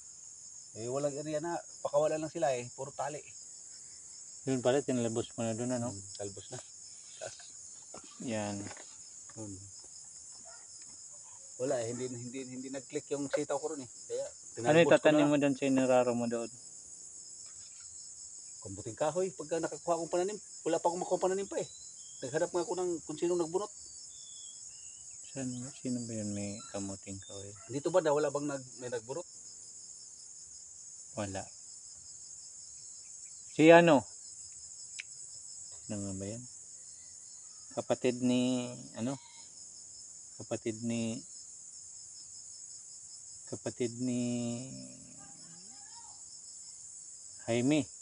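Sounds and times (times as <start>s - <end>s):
insects chirring: 0.0s - 48.0s.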